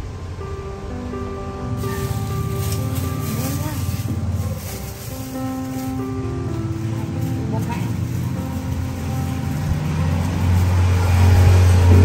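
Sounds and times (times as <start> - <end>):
faint background music: 0.0 - 12.0
deep low rumble: 0.9 - 12.0.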